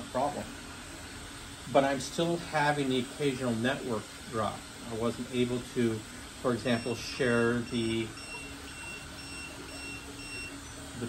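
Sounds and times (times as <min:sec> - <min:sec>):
steady low hum: 0:00.0 - 0:11.0
short high beeps: 0:07.6 - 0:10.6.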